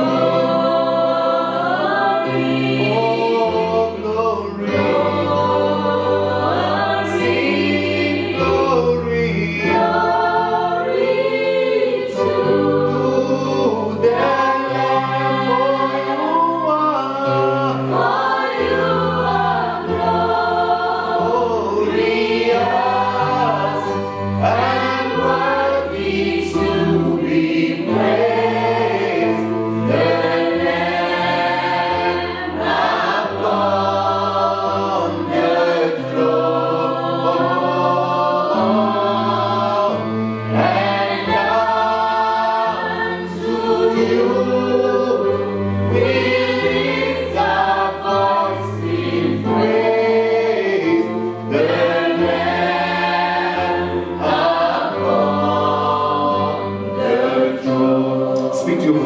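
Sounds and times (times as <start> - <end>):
congregation singing: 0.0 - 59.0
man singing into a microphone: 3.5 - 4.8.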